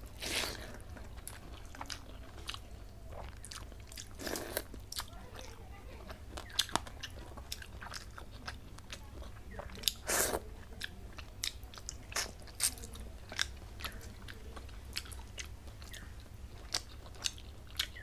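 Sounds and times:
steady low hum: 0.0 - 18.0
wet chewing and mouth clicks: 0.0 - 18.0.

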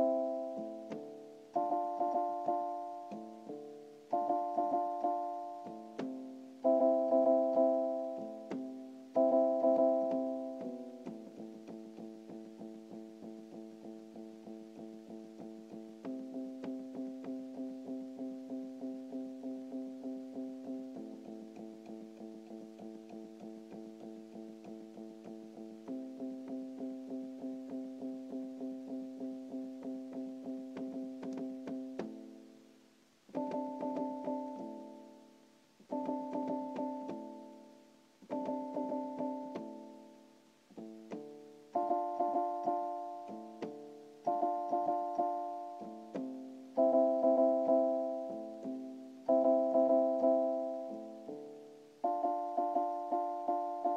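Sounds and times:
electronic keyboard chords: 0.0 - 53.9.

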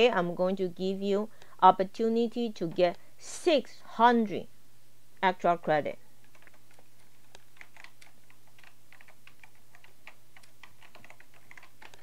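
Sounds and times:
typing on computer keyboard: 6.2 - 12.0.

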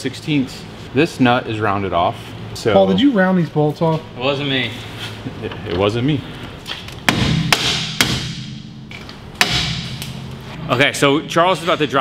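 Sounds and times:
hammer striking metal suspension: 7.0 - 10.3.

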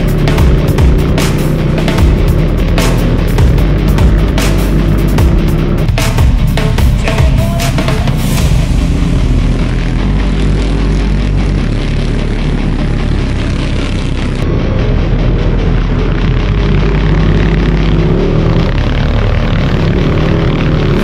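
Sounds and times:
hard rock music: 0.0 - 21.0
kart engines racing: 0.0 - 21.0.

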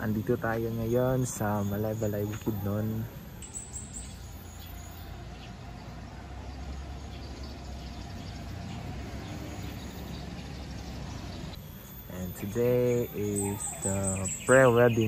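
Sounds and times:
birds chirping faintly: 0.0 - 15.0.

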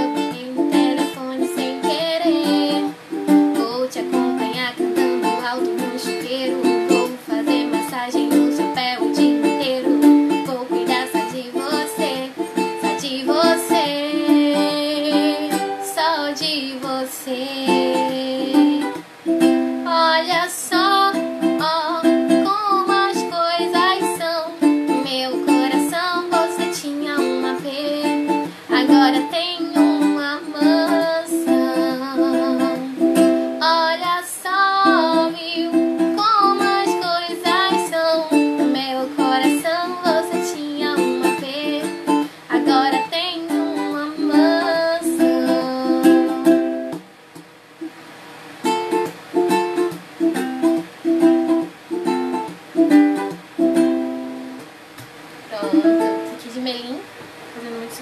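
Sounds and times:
woman singing: 0.0 - 19.0, 19.8 - 47.0, 55.5 - 58.0
ukulele strumming chords: 0.0 - 56.9.

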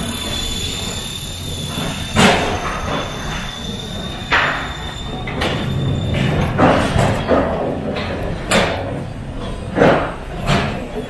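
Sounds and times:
faint high whine: 0.0 - 7.4.

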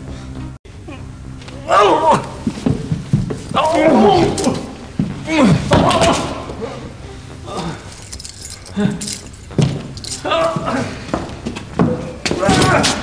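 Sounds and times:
light metallic jingling: 7.6 - 10.3.

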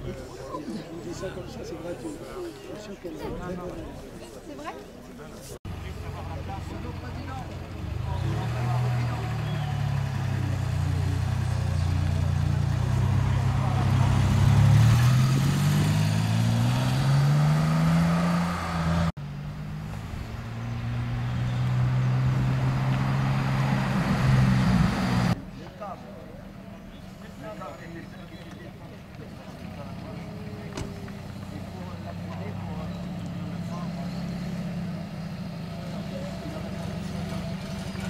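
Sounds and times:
sports car engine accelerating: 6.0 - 25.4.

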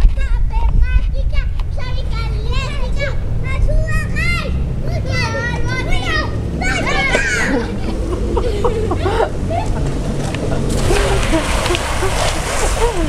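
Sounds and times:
low rumble: 0.0 - 13.0
children squealing and shrieking: 1.9 - 9.9, 10.7 - 13.0.

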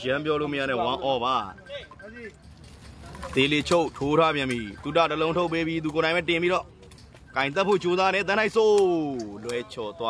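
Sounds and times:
man talking: 0.0 - 2.4, 3.2 - 10.0.

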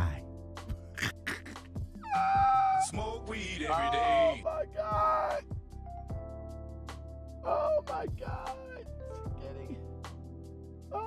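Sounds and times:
man laughing high-pitched: 1.0 - 1.7.

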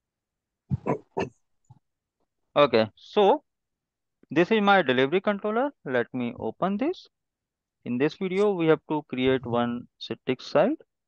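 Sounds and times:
man clearing throat: 0.7 - 1.4.

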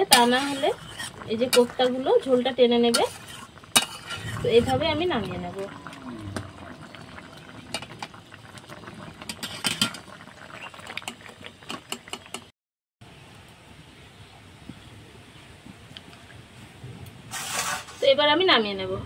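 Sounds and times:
hiss of simmering curry: 0.0 - 4.8, 16.3 - 18.3
metal spatula clicking and scraping: 2.9 - 4.3.

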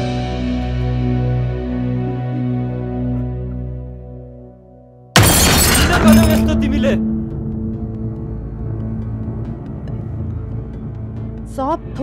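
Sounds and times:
soft sad background music: 0.0 - 5.1, 6.4 - 12.0.

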